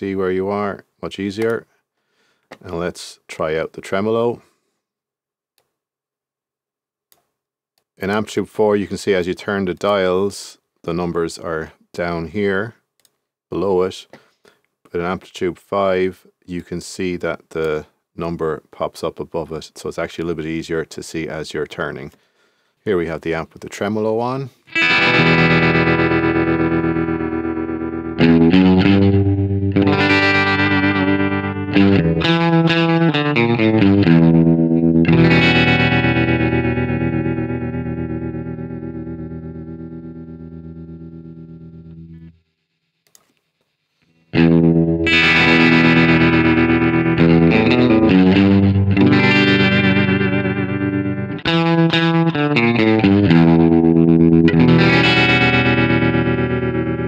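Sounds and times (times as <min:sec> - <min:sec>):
electric guitar chords with tremolo: 0:24.7 - 0:42.4, 0:44.4 - 0:57.0.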